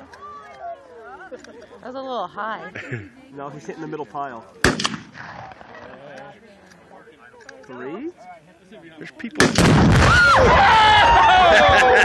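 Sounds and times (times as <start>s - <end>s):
faint talk of onlookers: 0.0s - 9.7s
rifle shot: 4.6s - 5.8s, 9.4s - 10.3s.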